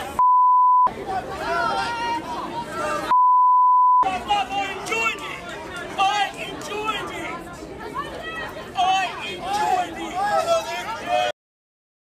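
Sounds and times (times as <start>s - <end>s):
censor bleep: 0.2s - 0.9s, 3.1s - 4.1s
people shouting: 1.0s - 3.1s, 8.0s - 11.3s.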